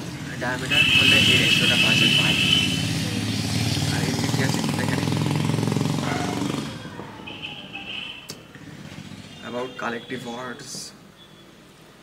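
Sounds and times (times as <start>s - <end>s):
vehicle engine running loudly: 0.0s - 6.9s.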